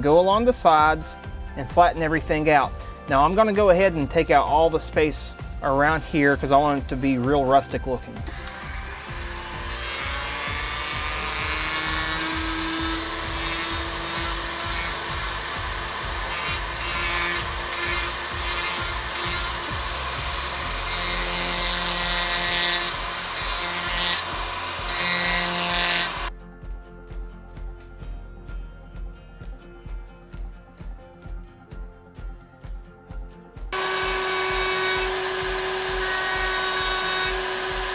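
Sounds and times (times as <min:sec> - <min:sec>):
rotary tool grinding wood: 0:08.2 - 0:26.3, 0:33.8 - 0:37.9.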